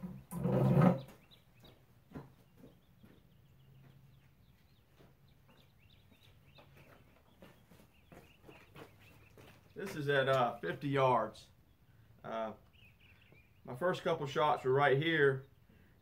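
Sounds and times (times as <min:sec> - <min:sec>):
faint bird chirps: 0:01.0 - 0:09.8, 0:11.5 - 0:13.8.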